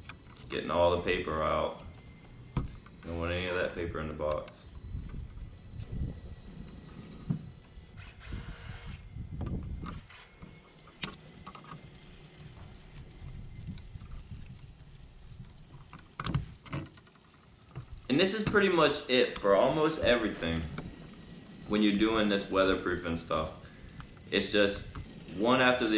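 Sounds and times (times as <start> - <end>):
low uneven rumble: 9.0 - 25.9.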